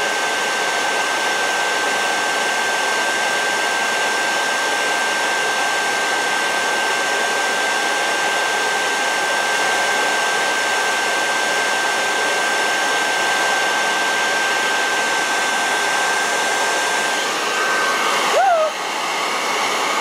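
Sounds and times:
blow dryer rushing air: 0.0 - 20.0.

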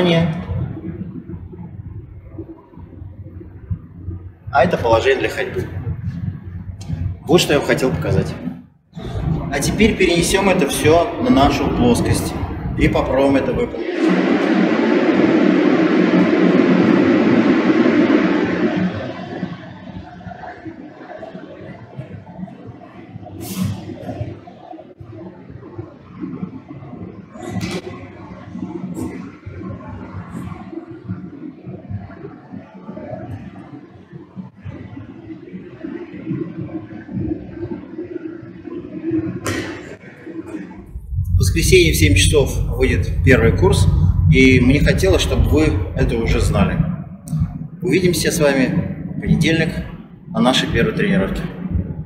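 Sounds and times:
loud rushing noise: 4.6 - 24.6, 39.1 - 52.0.

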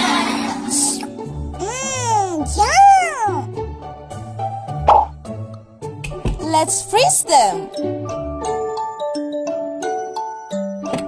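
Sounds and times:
cartoon background music with bass: 0.7 - 11.0.

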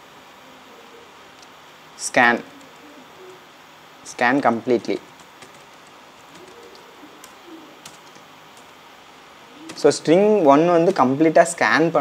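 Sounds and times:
faint low cooing calls: 0.0 - 4.0, 5.7 - 11.0.

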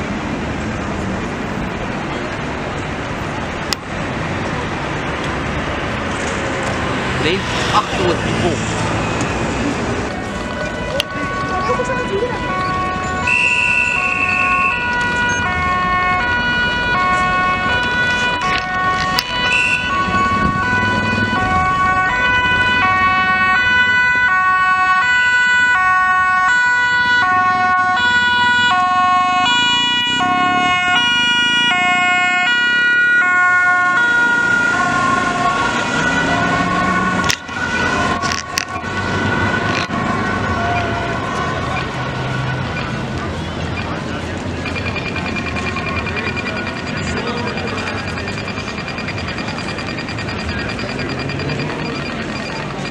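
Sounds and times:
two-tone ambulance sirens: 0.0 - 52.9.

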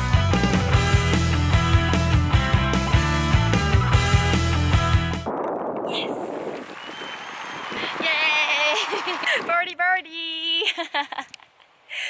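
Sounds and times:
person exclaiming and speaking: 5.9 - 6.4, 8.0 - 10.7.

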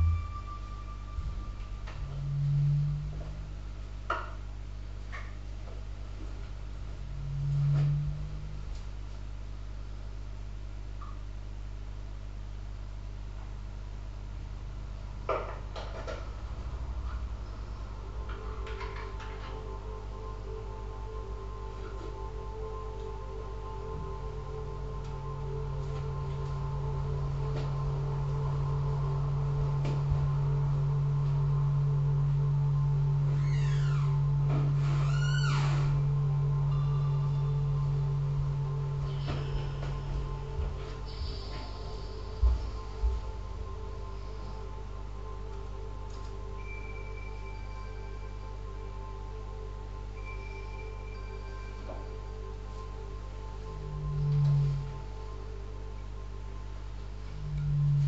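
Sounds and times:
falling pitch sweeps: 0.0 - 3.7, 6.9 - 8.8, 17.6 - 49.6, 50.2 - 56.3, 57.2 - 58.0
deep low drone: 0.0 - 58.0
synthesizer drones: 0.0 - 58.0.

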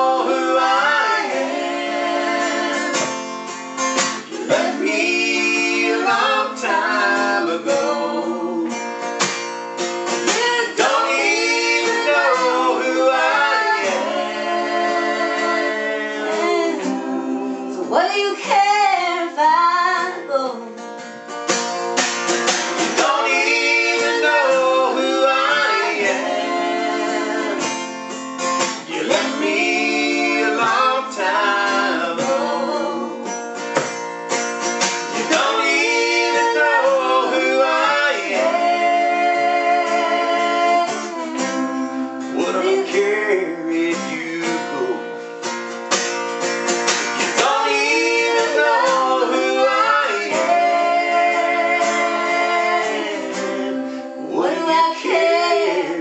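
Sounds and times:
acoustic guitar strumming: 0.0 - 56.0
people singing country song: 0.0 - 56.0.

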